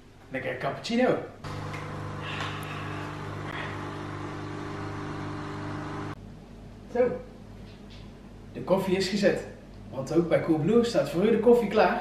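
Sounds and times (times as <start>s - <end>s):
coffee machine humming: 1.4s - 6.2s.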